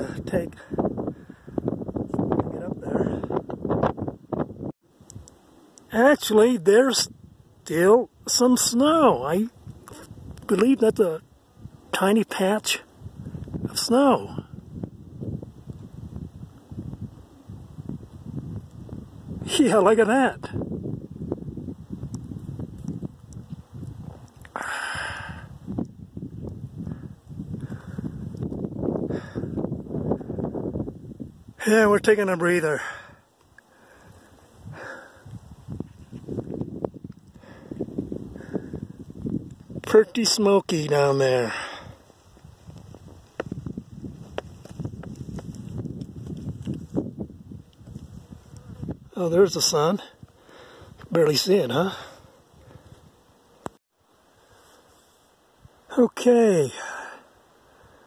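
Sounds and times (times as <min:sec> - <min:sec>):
microphone handling rumble: 0:00.0 - 0:05.2, 0:13.0 - 0:19.5, 0:20.4 - 0:24.6, 0:25.3 - 0:31.6, 0:34.6 - 0:40.0, 0:41.8 - 0:49.2
heavy breathing: 0:24.5 - 0:25.6, 0:29.0 - 0:29.6, 0:32.8 - 0:35.4, 0:37.3 - 0:39.0, 0:41.5 - 0:42.2, 0:50.4 - 0:51.0, 0:56.7 - 0:58.0
footsteps on rocky trail: 0:42.0 - 0:48.2.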